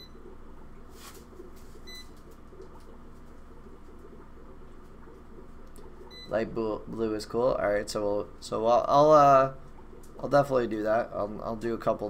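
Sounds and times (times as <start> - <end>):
low hum of room equipment: 0.0 - 12.0.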